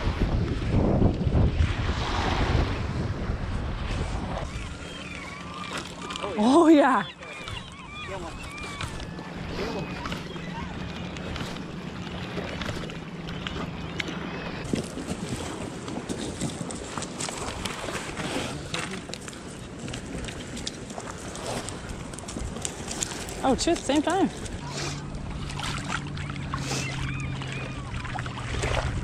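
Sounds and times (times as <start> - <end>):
water on shoreline: 0.0 - 29.0
wind: 0.0 - 29.0
fish clicking on wet stones: 18.6 - 24.6.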